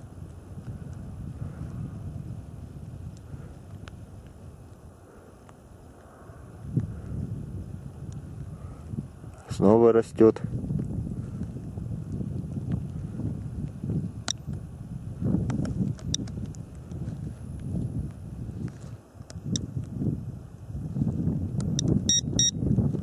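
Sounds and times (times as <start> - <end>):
wind buffeting microphone: 0.0 - 23.0
meter chirps: 22.1 - 22.6
short high beeps: 22.1 - 22.6.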